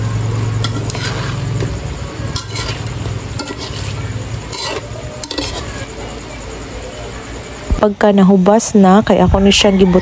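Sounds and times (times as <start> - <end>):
food sizzling in a pan: 0.0 - 7.6.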